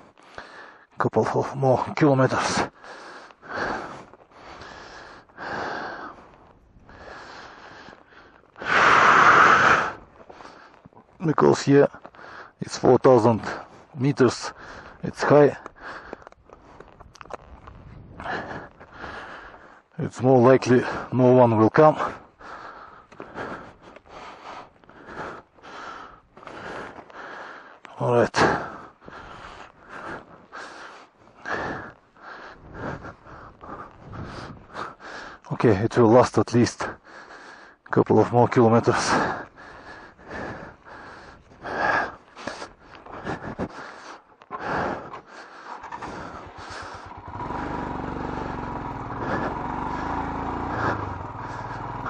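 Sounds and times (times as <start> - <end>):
man breathing hard: 0.0 - 1.0, 2.5 - 11.0, 12.0 - 12.6, 13.4 - 15.0, 15.6 - 17.0, 18.1 - 20.0, 21.9 - 35.5, 36.8 - 37.9, 38.8 - 52.0.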